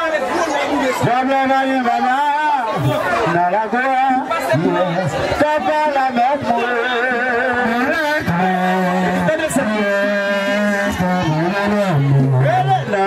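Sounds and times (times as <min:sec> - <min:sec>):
man singing over a pa: 0:01.0 - 0:13.0.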